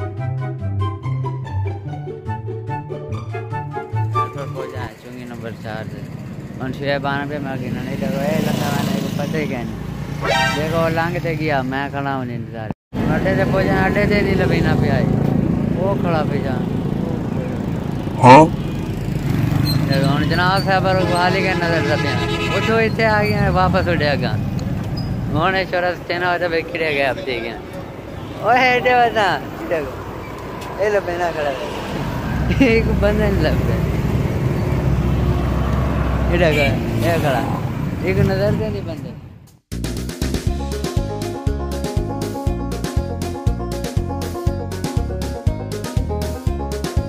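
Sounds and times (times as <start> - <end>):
road traffic: 1.2 - 47.0
street noise: 2.3 - 47.0
motorcycle engines running: 4.3 - 11.3, 13.0 - 39.0
man talking: 10.5 - 15.2, 18.2 - 18.6, 20.0 - 24.4, 25.3 - 27.8, 36.3 - 39.2.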